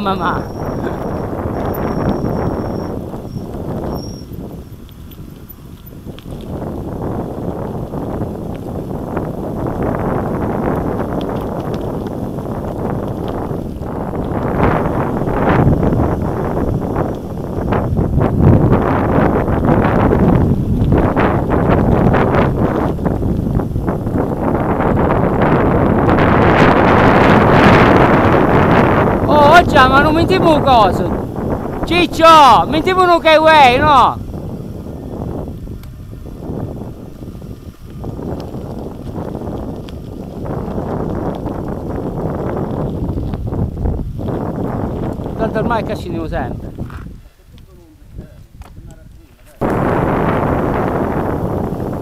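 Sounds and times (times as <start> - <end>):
bike rattling and knocking: 0.0 - 52.0
wind buffeting microphone: 0.0 - 52.0.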